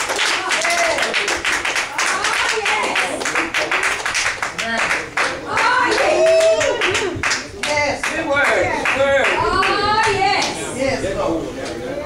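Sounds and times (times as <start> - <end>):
congregation clapping: 0.0 - 10.6.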